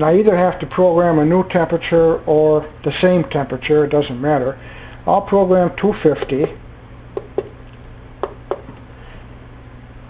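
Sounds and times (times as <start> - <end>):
fingertip tapping keypad buttons: 7.2 - 7.6.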